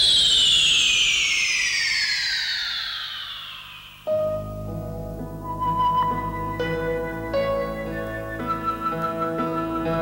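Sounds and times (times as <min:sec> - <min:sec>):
electronic falling whistle sweep: 0:00.0 - 0:04.3.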